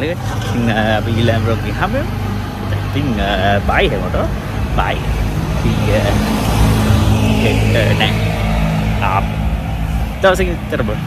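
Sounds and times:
man talking: 0.0 - 2.1, 2.7 - 6.3, 7.4 - 8.3, 9.0 - 9.3, 10.2 - 11.0
car engine and road noise: 0.0 - 11.0.

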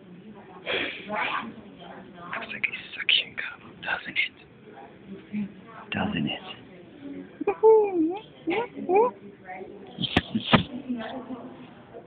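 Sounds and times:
person whispering: 2.4 - 4.4, 10.0 - 10.7.

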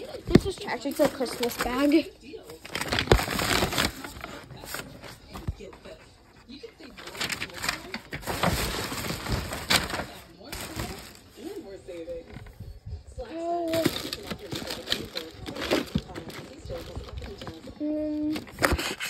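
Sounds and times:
plastic rustling and knocks: 0.1 - 2.0.

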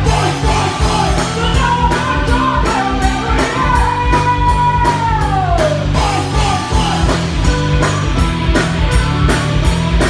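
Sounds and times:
bass guitar: 0.0 - 10.0
drum kit beat: 0.0 - 10.0
electric guitars: 0.0 - 10.0.

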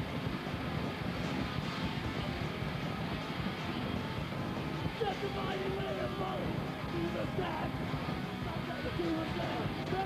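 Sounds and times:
pyrotechnics roaring rumble: 0.0 - 10.0.

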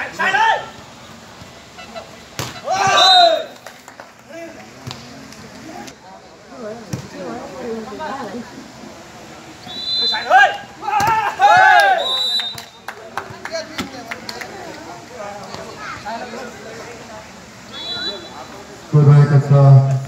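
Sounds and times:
people shouting and cheering: 0.0 - 0.8, 2.5 - 3.6, 9.7 - 13.4
volleyball being struck: 2.4 - 2.6, 11.0 - 11.8
high whistle-like tones: 9.6 - 10.3, 12.0 - 12.8, 17.7 - 18.4.

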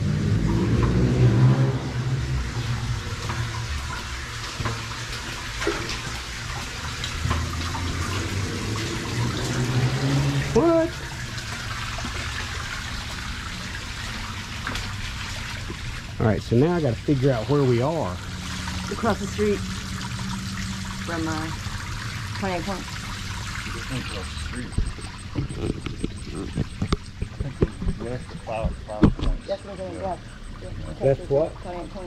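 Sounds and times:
creek water running and splashing: 0.0 - 32.0
small waterfall: 0.0 - 32.0.

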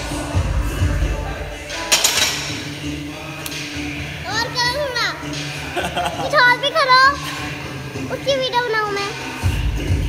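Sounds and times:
background music with low beat: 0.0 - 8.2, 9.3 - 10.0
child's sing-song voice: 4.0 - 5.4, 6.2 - 7.4, 8.0 - 9.5.

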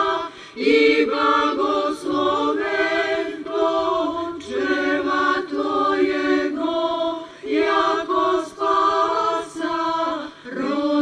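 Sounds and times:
mixed choir singing a cappella: 0.0 - 11.0.

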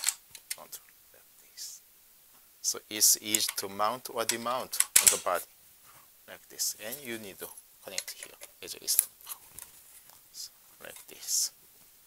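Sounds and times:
latch and metal clicks: 4.8 - 5.3.

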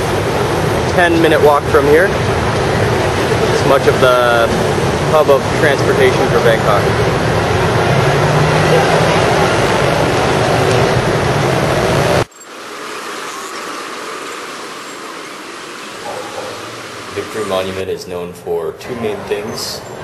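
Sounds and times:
dense road traffic: 0.0 - 20.0.

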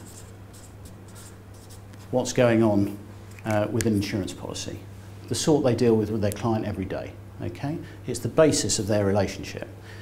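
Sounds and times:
marker scratching on paper: 0.0 - 2.0
steady low hum: 0.0 - 10.0.

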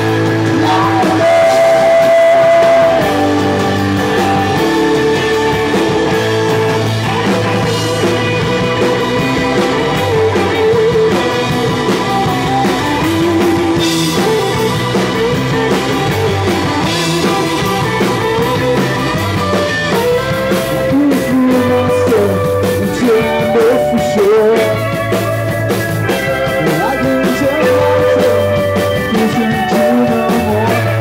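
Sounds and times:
drum kit: 0.0 - 31.0
electric bass line: 0.0 - 31.0
electric guitars: 0.0 - 31.0
hammond organ: 0.0 - 31.0.

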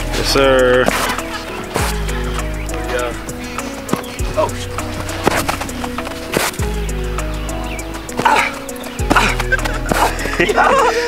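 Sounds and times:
deep bass notes and chords: 0.0 - 11.0.

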